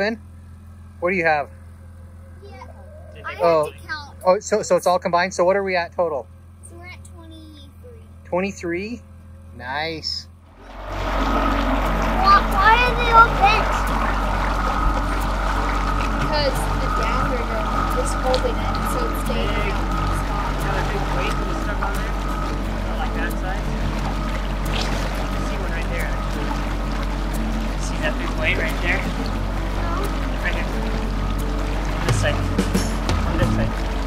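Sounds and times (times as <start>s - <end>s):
boat motor humming: 0.0s - 34.0s
water rushing along hull: 2.4s - 6.1s, 10.0s - 34.0s.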